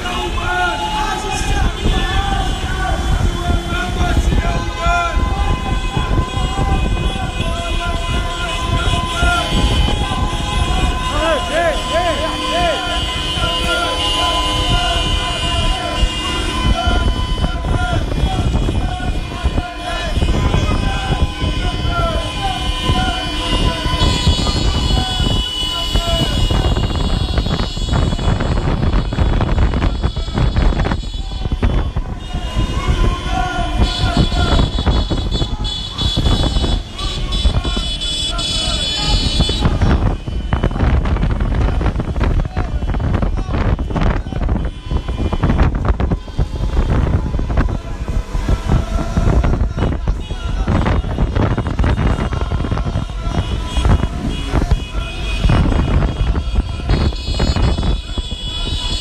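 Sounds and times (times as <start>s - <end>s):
car and motorcycle engines: 0.0s - 44.5s, 45.2s - 59.0s
car horns blasting: 0.0s - 59.0s
people shouting: 0.0s - 59.0s
wind on microphone: 1.1s - 11.2s, 12.8s - 59.0s.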